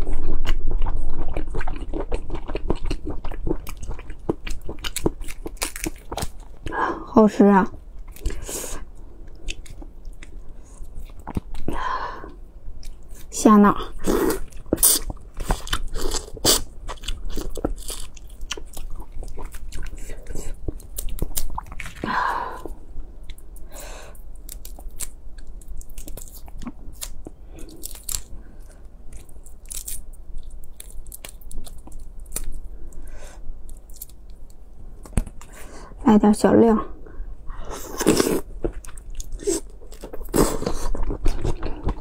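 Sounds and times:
chewing: 0.4 - 6.7, 14.2 - 22.0.

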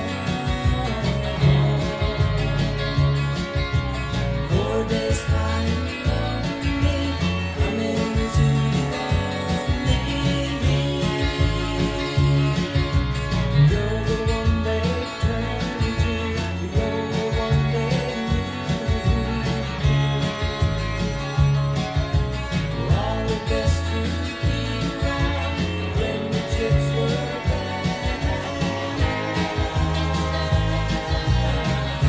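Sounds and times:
country-rock band recording: 0.0 - 32.0
electric guitar: 0.0 - 32.0.

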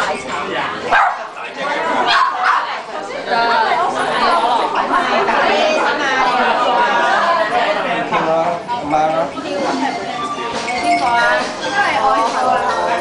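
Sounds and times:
people chattering: 0.0 - 13.0.

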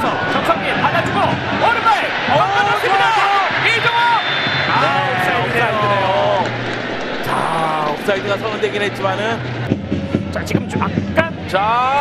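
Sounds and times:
excited commentator voice: 0.0 - 6.4
stadium background noise: 0.0 - 12.0.

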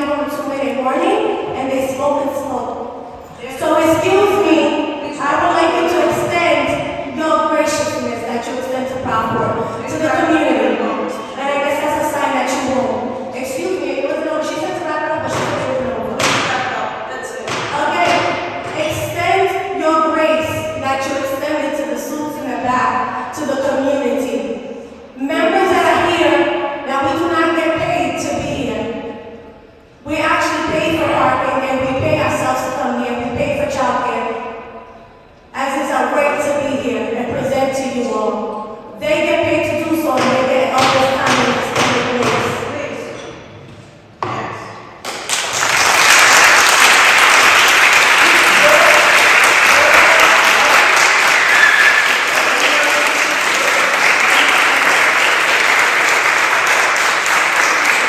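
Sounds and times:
woman speaking into microphone: 0.0 - 29.2, 30.0 - 34.7, 35.5 - 43.4.

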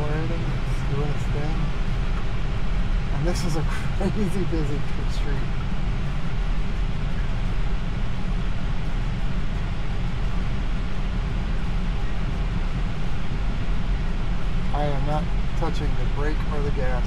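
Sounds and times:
road and tyre rumble in car cabin: 0.0 - 17.0.

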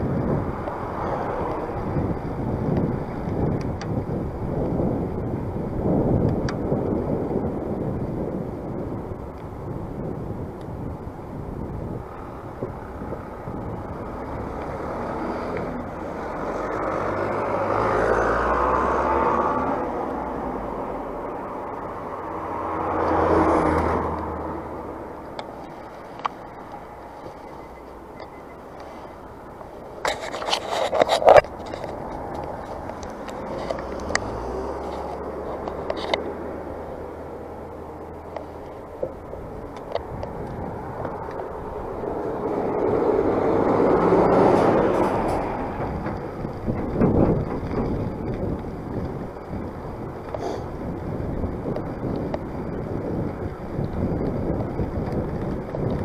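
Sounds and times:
motor vehicles passing: 0.0 - 56.0
wind buffeting microphone: 0.0 - 56.0.

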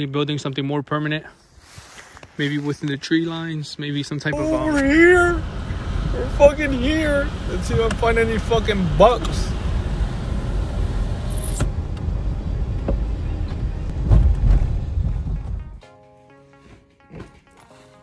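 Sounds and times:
car engine and road noise: 4.3 - 15.8.

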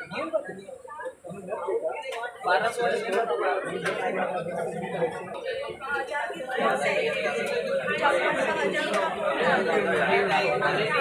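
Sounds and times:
overlapping chatter: 0.0 - 11.0.

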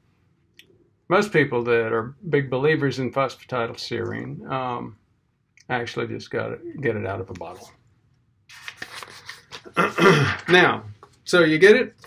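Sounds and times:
man clearing his throat: 9.7 - 10.6.

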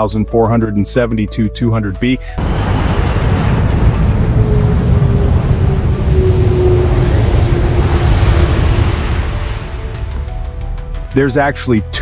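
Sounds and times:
jet engines roaring at takeoff: 2.4 - 10.6.

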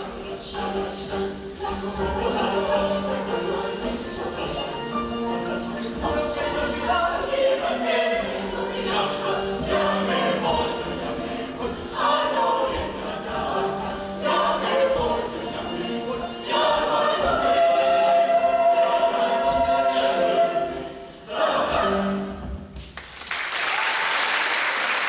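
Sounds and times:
choir singing in parts: 0.0 - 22.7.

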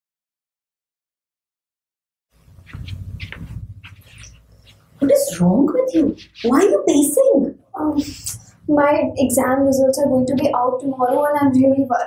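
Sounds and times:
soft footsteps pacing: 2.4 - 7.1
low steady hum: 2.4 - 12.0.

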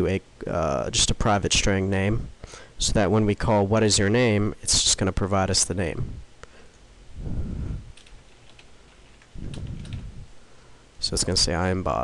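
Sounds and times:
computer keyboard typing: 8.0 - 10.1.

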